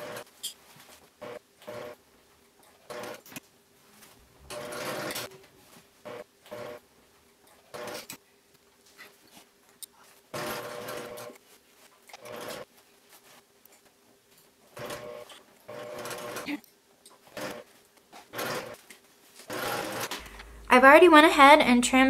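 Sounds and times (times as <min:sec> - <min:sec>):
electric sewing machine stitching: 0:00.0 - 0:00.3, 0:01.2 - 0:02.0, 0:02.9 - 0:03.4, 0:04.5 - 0:05.3, 0:06.1 - 0:06.8, 0:07.7 - 0:08.2, 0:10.4 - 0:11.4, 0:12.1 - 0:12.7, 0:14.7 - 0:16.6, 0:17.3 - 0:17.7, 0:18.3 - 0:18.8, 0:19.4 - 0:20.3.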